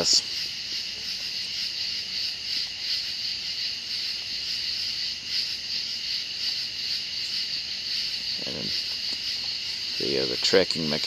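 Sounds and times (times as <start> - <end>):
night insects chirring: 0.0 - 11.0.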